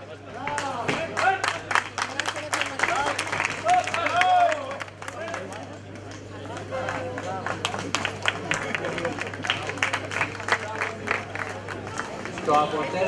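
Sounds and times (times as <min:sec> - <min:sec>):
crowd chatter: 0:00.0 - 0:13.0
crowd clapping: 0:00.4 - 0:13.0.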